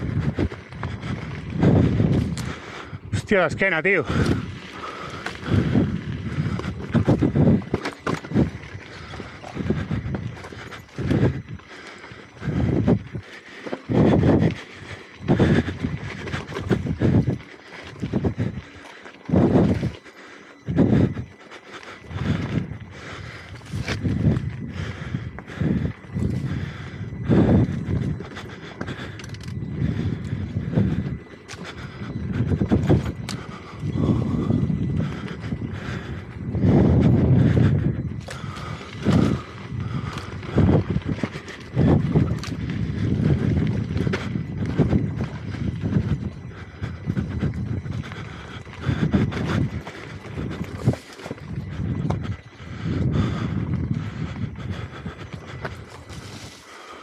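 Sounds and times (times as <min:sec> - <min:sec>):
electric unicycle rumbling on trail: 0:00.0 - 0:57.0
wheel knocking and rattling on stones: 0:04.2 - 0:11.2.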